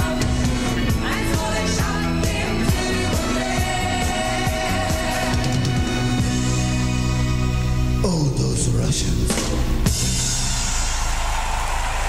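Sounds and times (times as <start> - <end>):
crowd applauding and cheering: 10.0 - 12.0.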